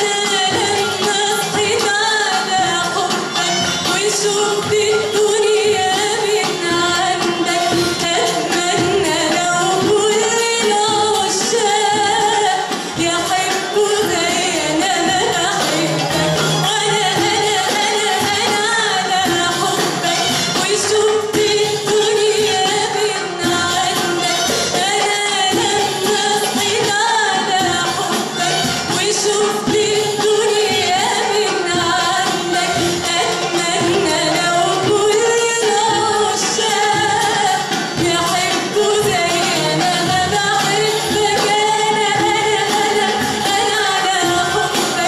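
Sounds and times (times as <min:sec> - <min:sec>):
oud: 0:00.0 - 0:45.0
strings: 0:00.0 - 0:45.0
woman singing: 0:00.0 - 0:45.0.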